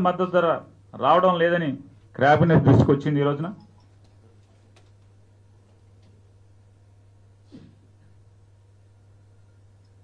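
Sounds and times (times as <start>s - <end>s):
man speaking into microphone: 0.0s - 3.7s
low steady hum: 0.0s - 10.0s.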